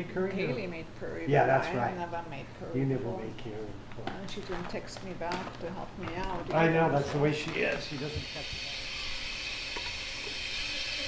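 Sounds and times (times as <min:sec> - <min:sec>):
espresso machine steam hiss: 0:07.8 - 0:11.0.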